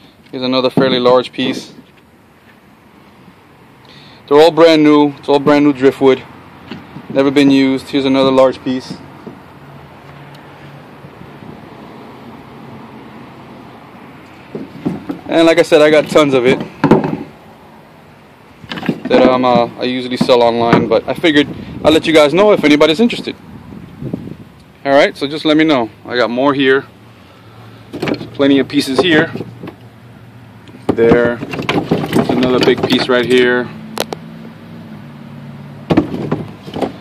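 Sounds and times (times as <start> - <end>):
faint background noise: 0.0 - 37.0
man talking: 0.3 - 1.8, 4.3 - 6.3, 7.1 - 9.0, 15.2 - 16.7, 19.0 - 23.4, 24.8 - 26.9, 28.3 - 29.4, 30.9 - 31.4, 32.2 - 33.8
driftwood knocking together: 8.2 - 9.4, 14.4 - 17.4, 18.7 - 21.0, 27.9 - 29.8, 30.7 - 33.4, 35.9 - 37.0.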